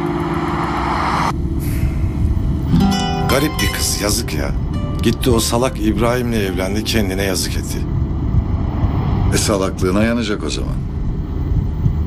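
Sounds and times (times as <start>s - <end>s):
car passing: 0.0s - 3.6s, 7.4s - 10.0s
car interior rumble: 4.3s - 12.0s.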